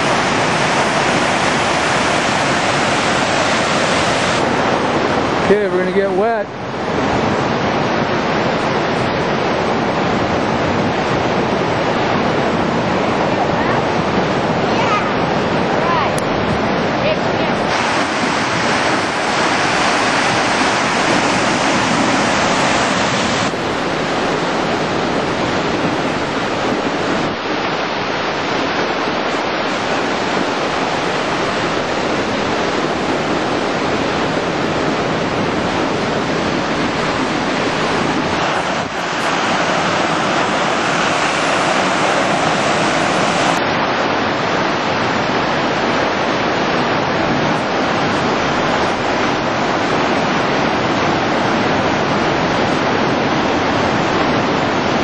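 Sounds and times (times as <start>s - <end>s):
waterfall rushing: 0.0s - 55.0s.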